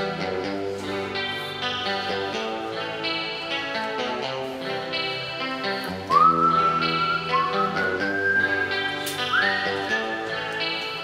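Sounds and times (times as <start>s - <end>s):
guitar chords: 0.0s - 11.0s
high pure-toned lead melody: 0.0s - 11.0s.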